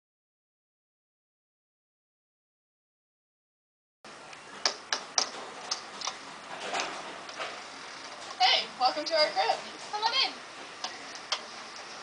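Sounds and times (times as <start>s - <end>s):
sharp clicks and knocks: 4.6s - 8.4s, 10.8s - 11.9s.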